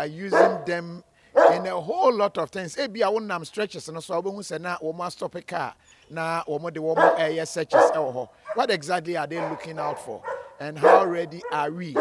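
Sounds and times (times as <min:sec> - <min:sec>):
man talking: 0:00.0 - 0:12.0
dog barking: 0:00.3 - 0:00.7, 0:01.4 - 0:01.7, 0:07.0 - 0:08.7, 0:09.3 - 0:12.0.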